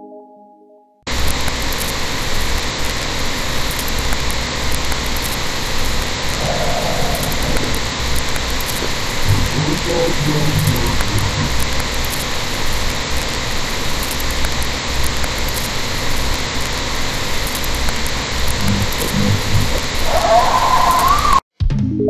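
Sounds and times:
steady hiss: 1.1s - 21.4s
low rumble: 6.0s - 12.1s, 18.2s - 20.1s.

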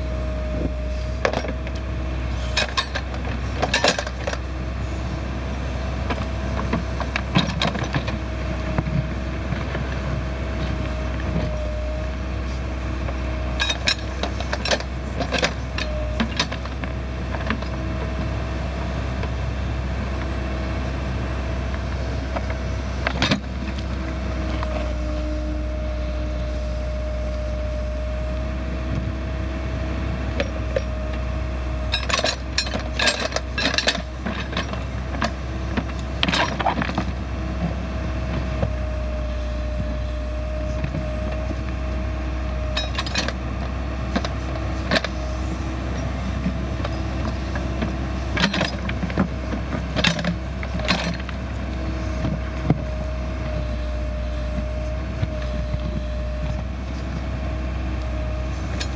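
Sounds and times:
diesel engine under load: 0.0s - 58.9s
hydraulic whine: 0.0s - 58.9s
steel bucket clanking and scraping: 31.9s - 37.1s, 46.8s - 49.2s.

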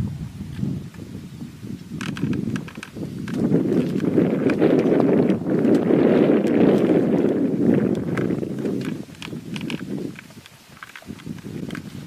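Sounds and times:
wind buffeting microphone: 0.0s - 12.0s
faint ticks: 2.0s - 5.8s, 7.8s - 12.0s.

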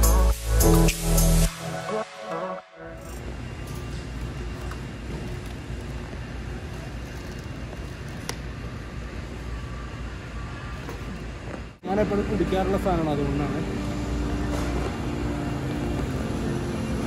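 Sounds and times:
warehouse store background noise: 2.8s - 17.0s.

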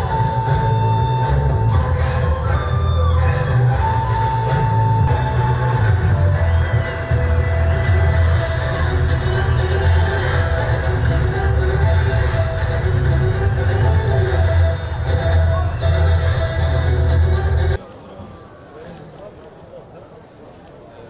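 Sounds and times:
music with heavy bass: 0.0s - 17.8s.

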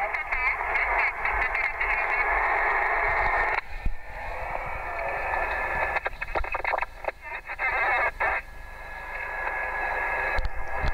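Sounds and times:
garbled radio voice: 0.0s - 2.4s, 5.4s - 8.5s
radio static and hiss: 0.0s - 10.9s.

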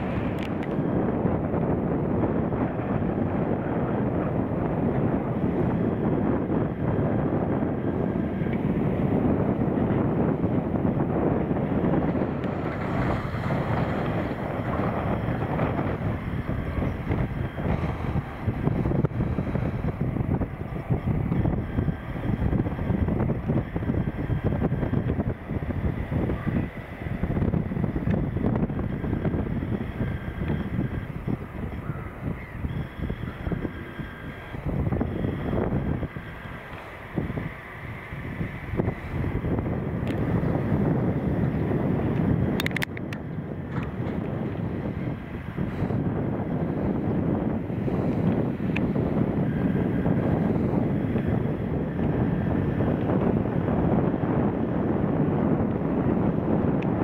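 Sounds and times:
tractor engines rumbling: 0.0s - 57.0s
wind buffeting microphone: 0.0s - 57.0s
faint bird calls: 31.2s - 34.5s.

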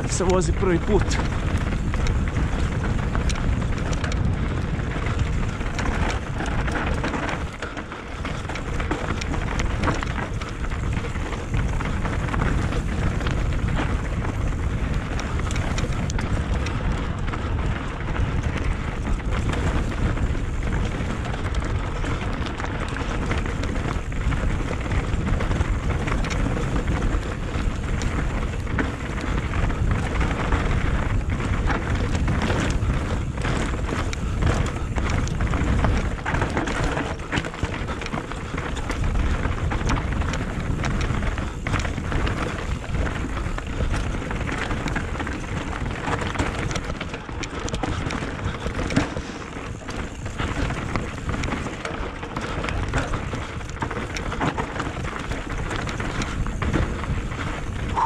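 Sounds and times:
bike rattling over bumps: 0.0s - 58.0s
tyres crunching over gravel: 0.0s - 58.0s
wind rushing on microphone: 0.0s - 58.0s.

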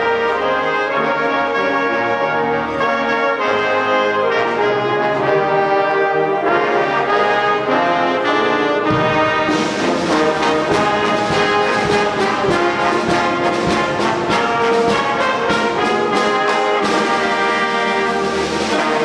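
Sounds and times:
brass section playing chords: 0.0s - 19.0s
drums keeping a beat: 8.8s - 19.0s.

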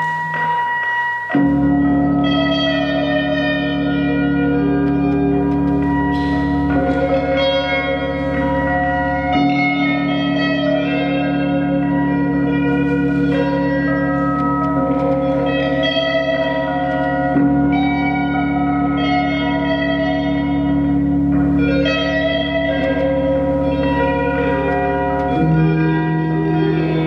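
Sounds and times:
ringing electric guitar notes: 0.0s - 27.0s
steady low drone: 1.4s - 27.0s.

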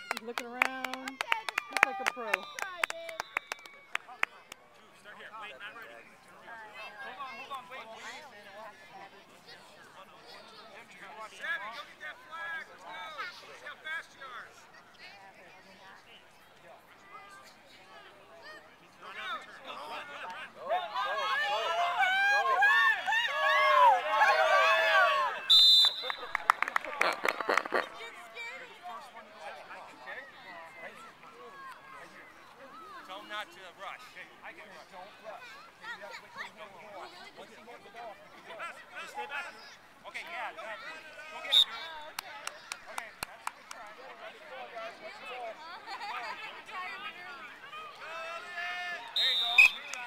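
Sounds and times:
adults and children calling out: 5.0s - 50.0s
children shouting and yelling: 20.6s - 25.5s
shrill whistle blast: 25.5s - 26.3s, 49.1s - 50.0s.

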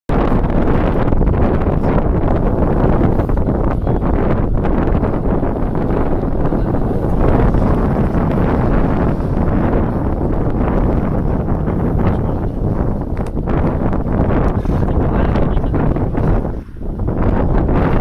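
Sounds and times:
strong wind buffeting microphone: 0.1s - 18.0s.

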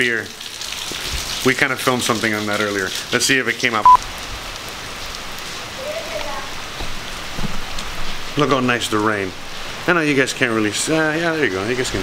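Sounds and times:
rain on wet pavement: 0.0s - 12.0s.

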